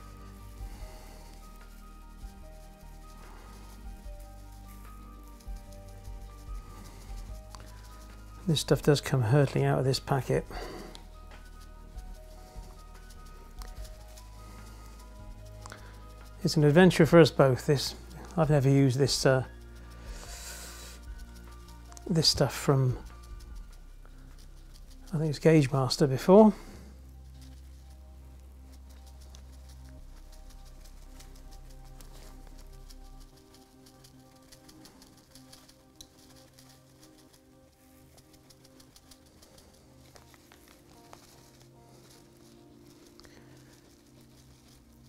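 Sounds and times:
rustling hiss of shaken scatter: 0.0 - 45.0
soft background music: 0.0 - 45.0.

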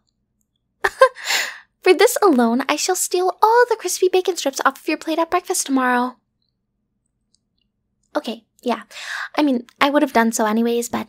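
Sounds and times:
woman's voice: 1.8 - 6.2, 8.2 - 11.0.

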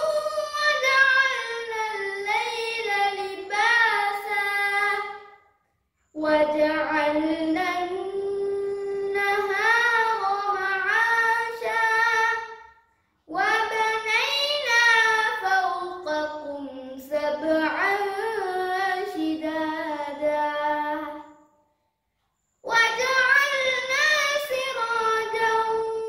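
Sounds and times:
boy chanting recitation: 0.0 - 5.4, 6.1 - 21.6, 22.6 - 26.0.

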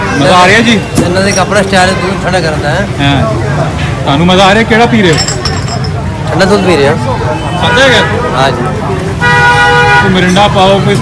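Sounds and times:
vehicle horn honking: 9.2 - 10.2.

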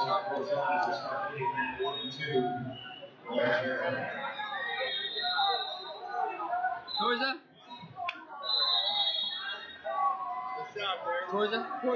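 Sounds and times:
crowd talking and calling out: 0.0 - 11.9.

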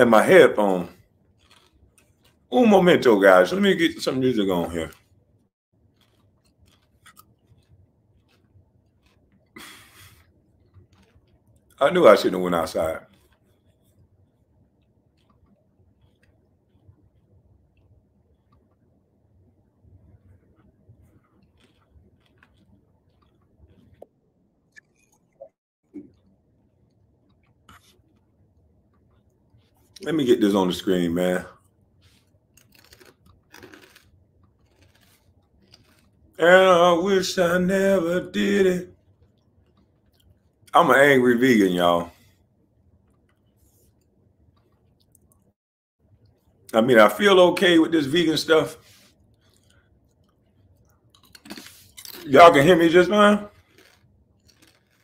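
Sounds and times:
faint clicks and scratching: 0.0 - 36.7, 38.6 - 55.0.

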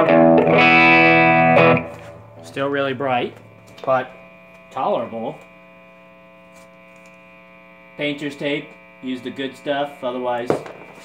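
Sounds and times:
guitar amp mains hum: 0.0 - 11.0.

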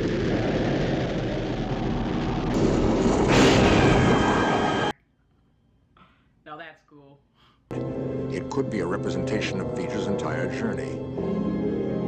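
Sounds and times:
thruster rushing noise: 0.0 - 4.9.

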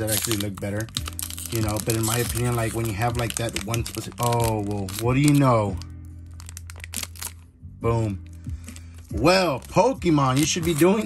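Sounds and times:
foil wrapper crinkling and tearing: 0.0 - 7.5, 8.6 - 11.0.

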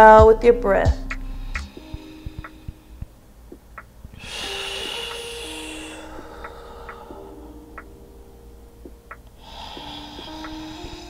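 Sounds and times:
soft background music: 0.0 - 11.0
long exhale through mouth: 4.2 - 7.4.

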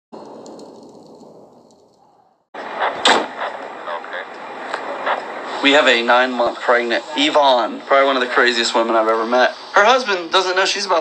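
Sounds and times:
faint crackles: 0.2 - 10.6
noisy rumble: 0.2 - 11.0.

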